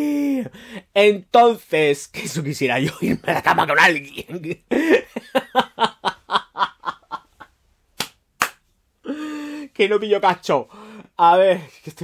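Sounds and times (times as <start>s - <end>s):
man laughing hard: 2.8s - 7.5s.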